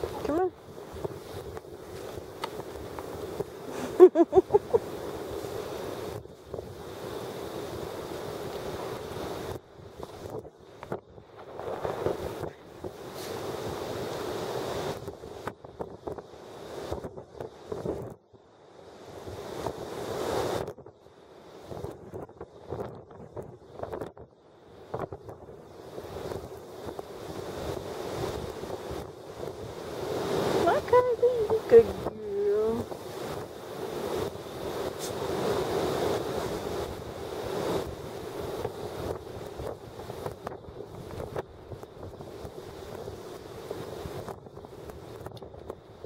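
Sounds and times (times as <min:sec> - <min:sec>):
gusty wind buffeting microphone: 0:00.0 - 0:18.3, 0:18.9 - 0:46.0.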